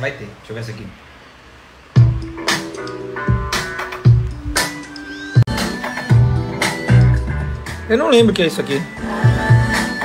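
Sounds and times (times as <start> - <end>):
music with deep bass beat: 2.0 - 8.4.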